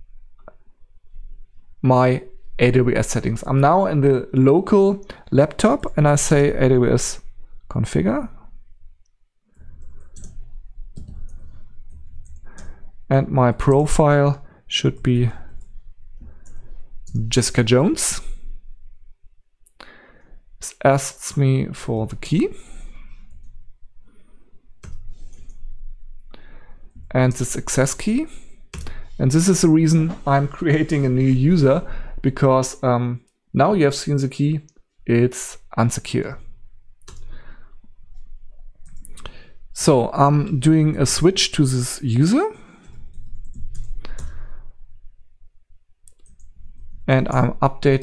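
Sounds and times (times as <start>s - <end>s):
laptop keystrokes clicking: 9.8s - 12.7s.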